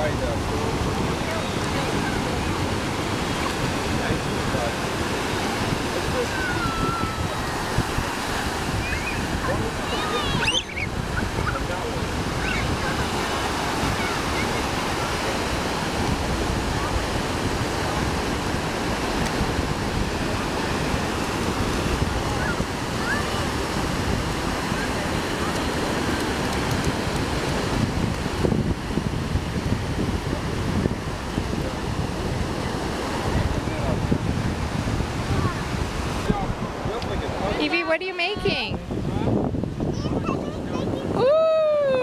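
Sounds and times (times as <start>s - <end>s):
ocean surf breaking on beach: 0.0s - 42.0s
wind on microphone: 0.0s - 42.0s
faint children shouting: 6.2s - 7.6s.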